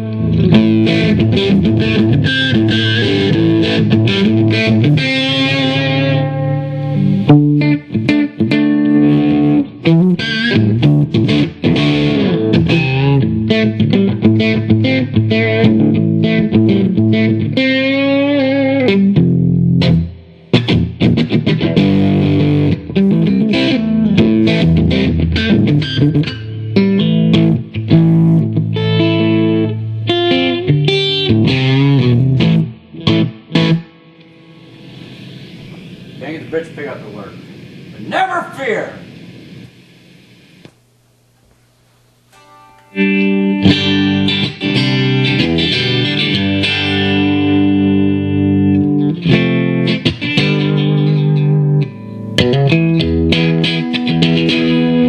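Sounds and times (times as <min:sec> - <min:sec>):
electric guitar through amplifier: 0:00.0 - 0:55.0.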